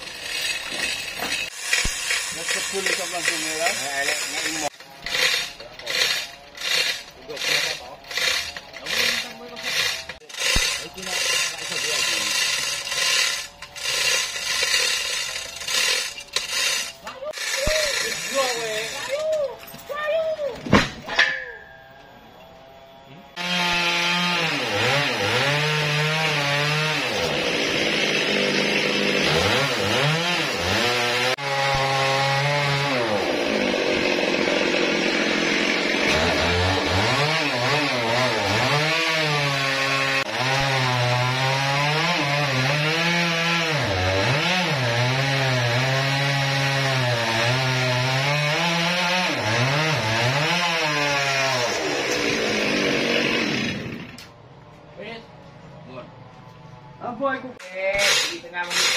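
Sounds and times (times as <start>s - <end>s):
chainsaw cutting log: 0.0s - 19.2s, 23.3s - 54.4s, 58.0s - 58.9s.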